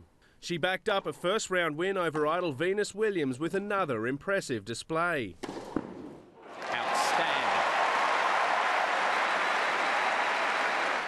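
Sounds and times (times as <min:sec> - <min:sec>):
crowd applauding: 0:06.4 - 0:11.0.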